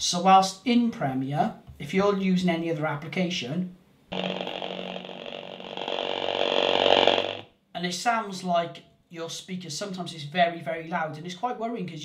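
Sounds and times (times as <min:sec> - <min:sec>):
harsh crackling distortion: 0:04.1 - 0:07.5.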